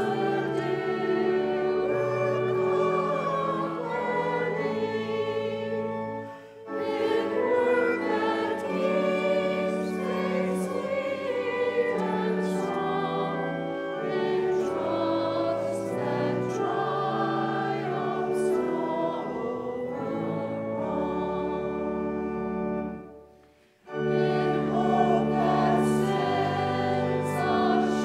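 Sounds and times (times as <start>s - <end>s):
choir singing: 0.0s - 23.2s, 23.8s - 28.0s
keyboard accompaniment: 0.0s - 28.0s.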